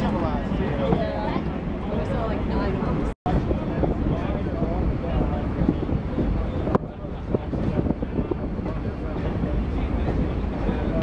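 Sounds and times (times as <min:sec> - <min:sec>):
train car rumbling over rails: 0:00.0 - 0:11.0.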